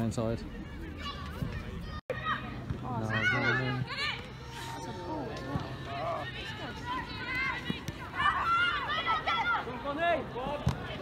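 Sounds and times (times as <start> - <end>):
women shouting and calling: 6.2 - 9.9.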